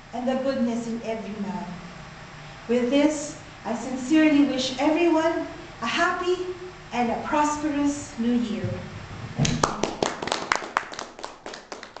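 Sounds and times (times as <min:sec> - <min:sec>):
people applauding: 0:09.4 - 0:12.0.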